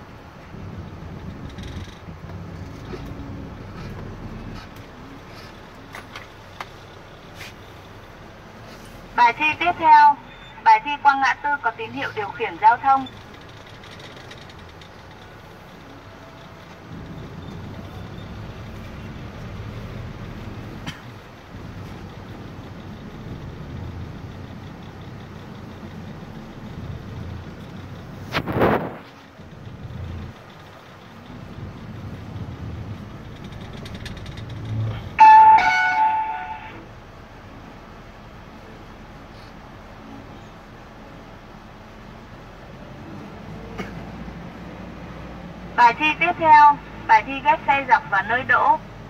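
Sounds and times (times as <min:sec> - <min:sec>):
car engine and road rumble: 0:00.0 - 0:49.0
sudden loud noise: 0:28.3 - 0:29.2
loud steady pitched tone: 0:35.2 - 0:36.9.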